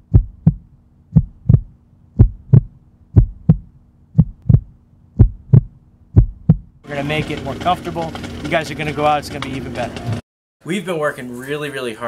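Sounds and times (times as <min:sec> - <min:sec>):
faint steady hum: 0:00.0 - 0:06.8
heartbeat thumps: 0:00.0 - 0:06.8.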